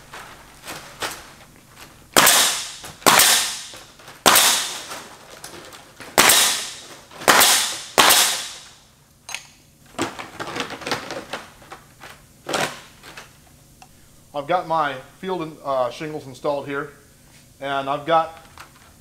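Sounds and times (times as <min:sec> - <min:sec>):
nail gun firing: 0:02.2 - 0:05.0, 0:06.1 - 0:08.7.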